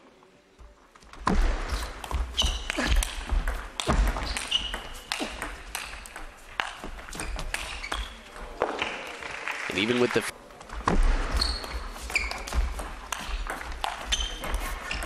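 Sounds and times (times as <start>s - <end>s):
footwork thuds: 0.6s - 8.6s
shoe squeaks on floor: 1.7s - 2.9s, 4.1s - 5.2s, 7.1s - 9.0s, 11.2s - 15.0s
table tennis ball clicking: 2.1s - 8.2s.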